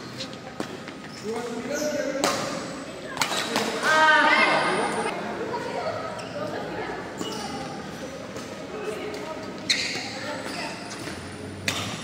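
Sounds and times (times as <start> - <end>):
rackets hitting shuttlecock: 2.2 - 3.9, 10.4 - 12.0.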